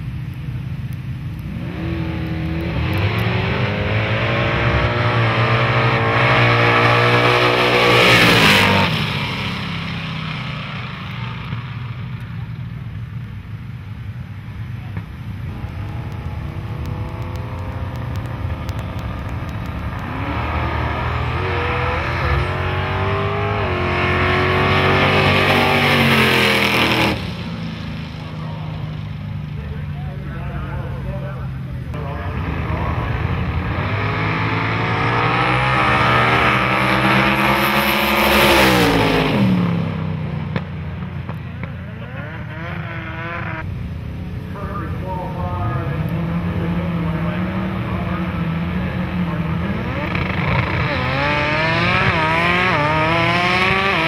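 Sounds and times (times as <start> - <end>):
drag racing cars at full throttle: 0.0 - 54.0.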